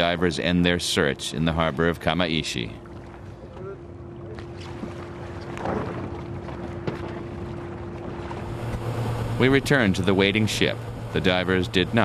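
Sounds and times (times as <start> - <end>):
boat engine humming: 0.0 - 12.0
water sloshing: 1.5 - 12.0.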